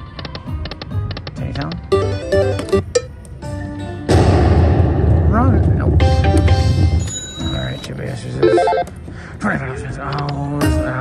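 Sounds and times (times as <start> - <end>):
slot machine electronic chimes: 1.9 - 3.1, 6.0 - 8.9
loud noisy rushing sound: 4.1 - 7.0.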